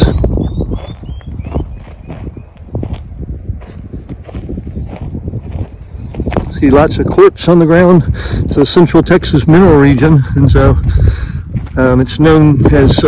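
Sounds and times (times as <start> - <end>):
bird singing high notes: 0.0 - 2.5
footsteps on stony ground: 0.0 - 13.0
wind buffeting microphone: 0.0 - 13.0.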